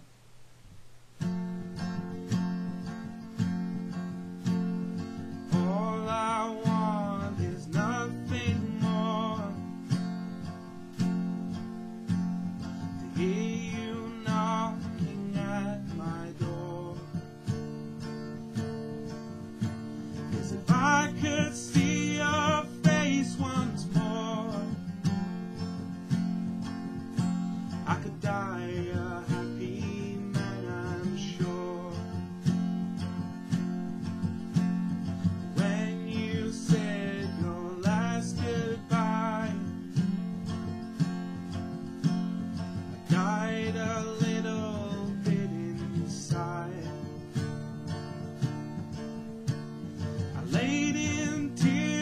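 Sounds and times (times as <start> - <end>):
acoustic guitar strumming: 0.8 - 52.0
man singing: 5.5 - 10.0, 12.9 - 17.2, 20.3 - 25.0, 27.7 - 32.4, 35.4 - 40.2, 43.0 - 47.4, 50.3 - 52.0.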